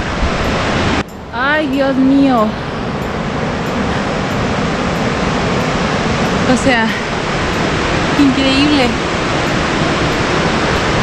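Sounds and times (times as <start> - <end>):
river rushing over rapids: 0.0 - 11.0.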